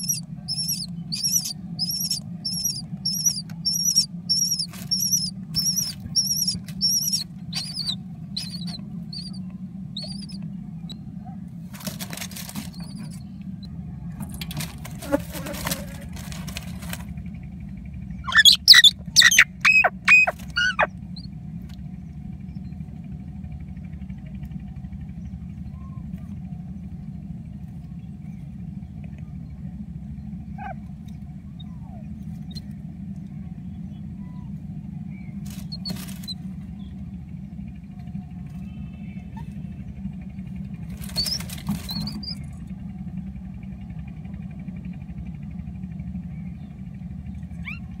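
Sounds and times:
mynas calling: 0.0s - 10.4s, 18.2s - 21.3s, 30.4s - 32.7s, 40.9s - 42.4s, 47.5s - 48.0s
steady low hum: 0.0s - 48.0s.

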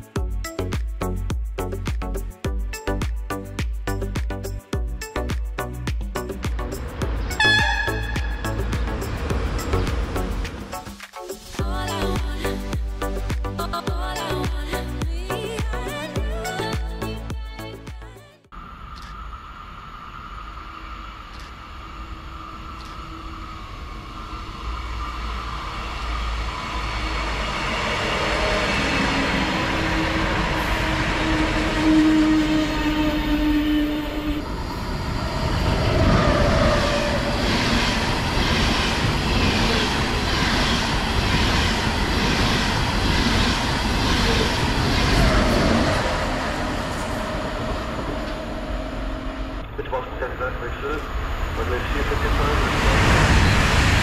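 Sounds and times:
high-speed train passing: 6.0s - 13.2s, 18.5s - 54.0s.

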